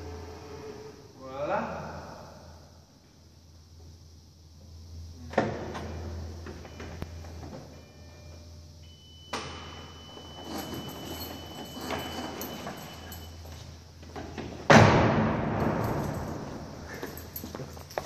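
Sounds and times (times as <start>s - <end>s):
steady high warning tone: 0.0s - 2.7s, 4.5s - 14.0s.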